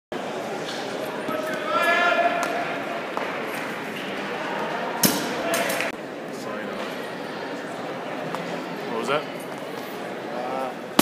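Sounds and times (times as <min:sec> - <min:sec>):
echoing chatter and calls: 0:00.2 - 0:11.0.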